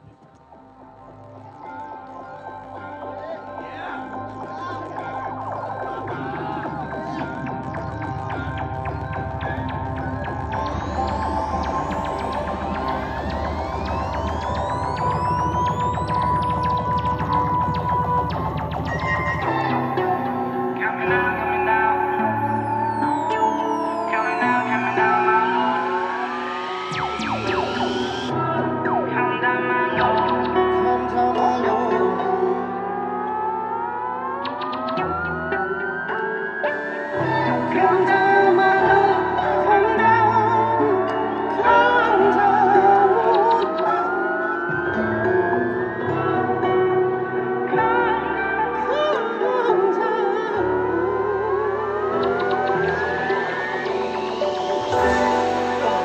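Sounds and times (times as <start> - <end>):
held synth drone: 1.8 - 47.9, 50.4 - 56.0
rising synth sweep: 4.4 - 31.4, 51.0 - 56.0.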